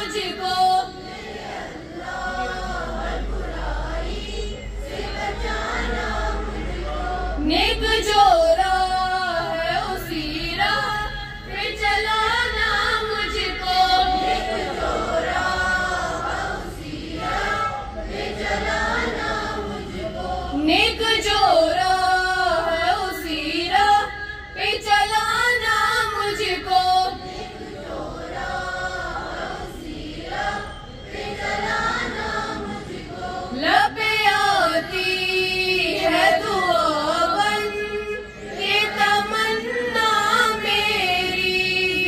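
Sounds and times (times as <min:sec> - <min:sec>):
girls singing in unison: 0:00.0 - 0:42.0.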